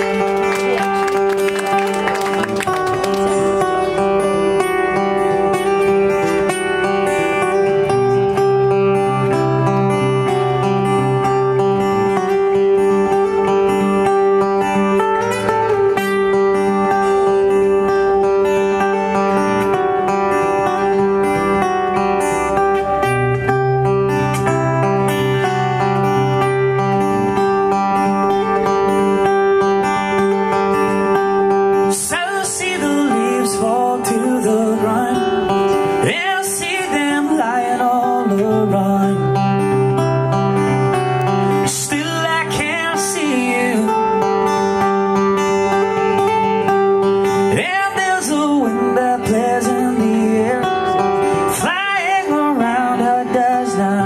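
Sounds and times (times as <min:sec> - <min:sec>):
acoustic guitar playing: 0:00.0 - 0:54.0
person singing: 0:31.8 - 0:40.0, 0:41.4 - 0:44.7, 0:47.4 - 0:54.0.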